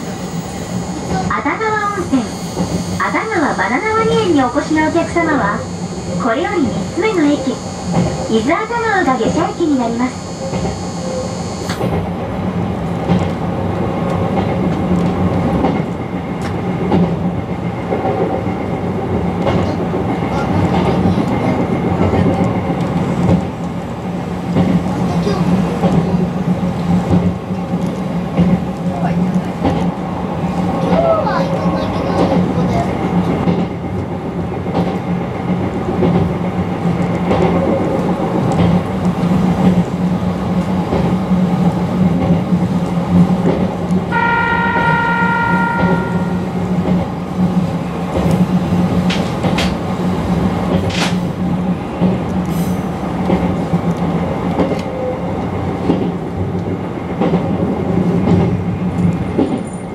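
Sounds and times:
electric train running hum: 0:00.0 - 0:59.9.

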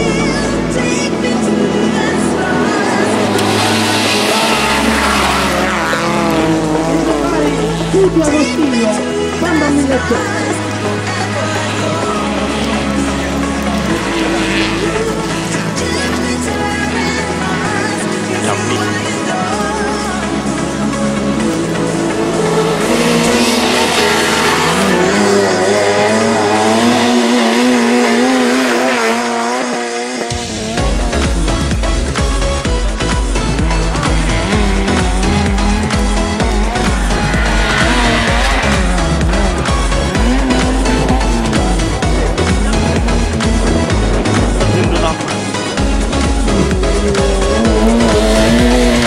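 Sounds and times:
car engine revving hard: 0:00.0 - 0:17.8, 0:19.8 - 0:49.0
background music with bass line: 0:00.0 - 0:49.0.

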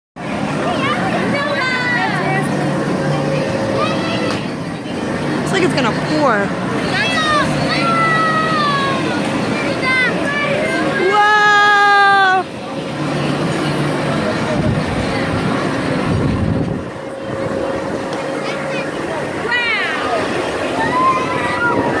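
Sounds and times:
crowd noise: 0:00.2 - 0:22.0
machinery hum: 0:00.2 - 0:22.0
voices calling out: 0:00.4 - 0:22.0.

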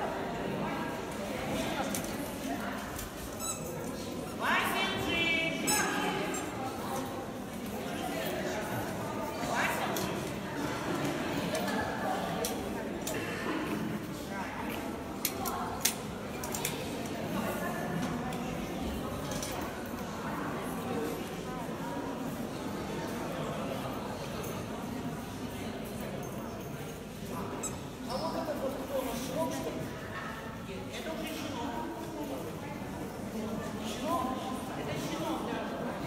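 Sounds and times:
voices murmuring in a hall: 0:00.0 - 0:36.0.

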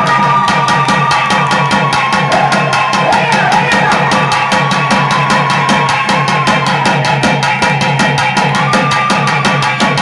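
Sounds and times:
fast barrel drum beats: 0:00.0 - 0:10.0.

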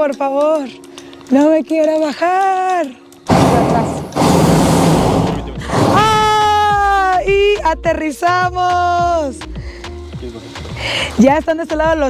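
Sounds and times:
propane burner flame rushing: 0:03.3 - 0:06.3.

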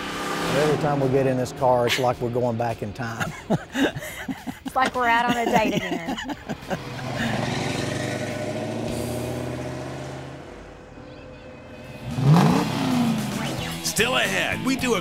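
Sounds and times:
car engine pulling away: 0:00.0 - 0:02.4, 0:06.6 - 0:13.8
person laughing: 0:01.6 - 0:02.3, 0:03.1 - 0:07.5.

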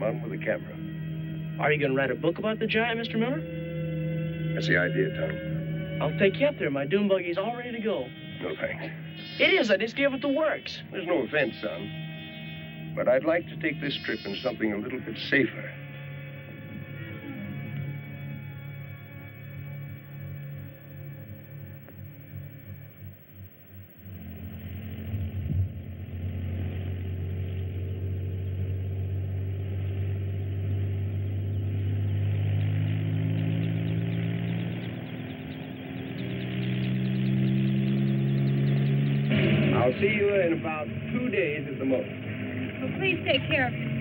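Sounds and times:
music: 0:00.0 - 0:44.0
vehicle engine revving: 0:00.0 - 0:44.0.

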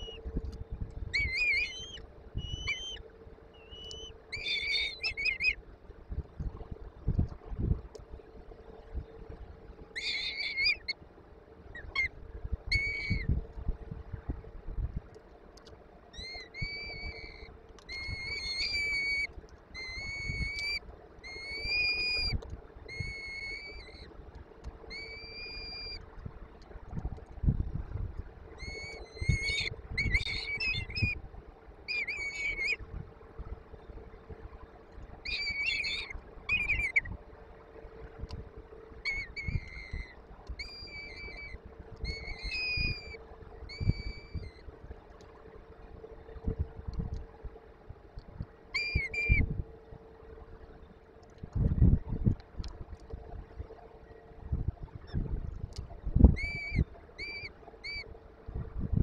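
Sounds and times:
steady low hum: 0:00.0 - 0:59.0
falcon chicks begging calls: 0:03.6 - 0:05.6, 0:10.0 - 0:11.0, 0:31.9 - 0:32.8, 0:35.3 - 0:37.1.

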